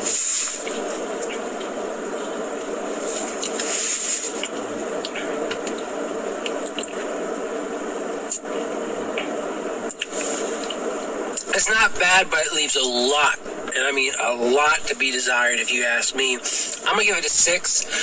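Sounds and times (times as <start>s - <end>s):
steady hiss: 0.0s - 18.0s.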